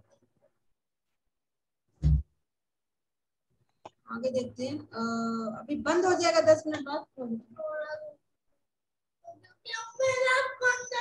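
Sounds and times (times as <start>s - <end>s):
child's high-pitched drawn-out voice: 7.6s - 8.2s, 9.2s - 11.0s.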